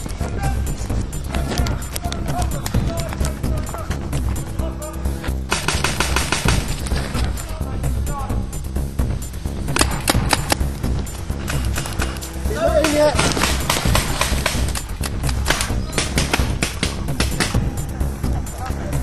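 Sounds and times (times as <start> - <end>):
music with steady beat: 0.0 - 19.0
paintball marker rapid shots: 5.5 - 7.0, 9.7 - 10.7, 12.8 - 17.7.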